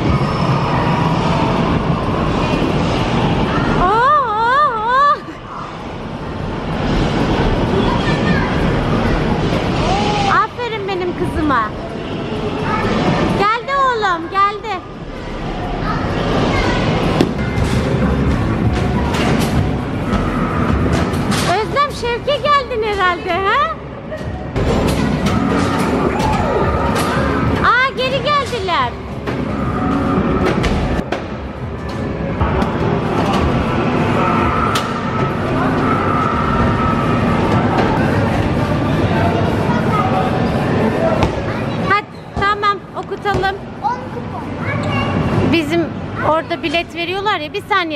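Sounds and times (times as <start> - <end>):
busy amusement arcade din: 0.0 - 47.9.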